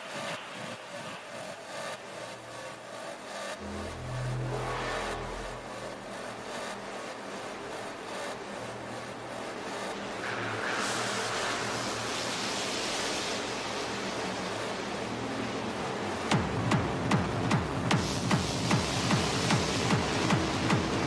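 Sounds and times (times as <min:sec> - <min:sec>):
sweeping noise wash: 0:00.0 - 0:17.9
low synth note: 0:03.6 - 0:07.1.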